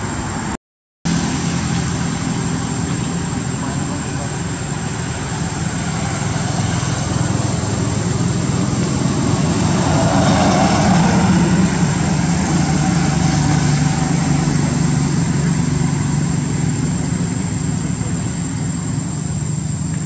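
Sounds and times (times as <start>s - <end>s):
high steady whine: 0.0s - 20.0s
low engine-like drone: 0.0s - 20.0s.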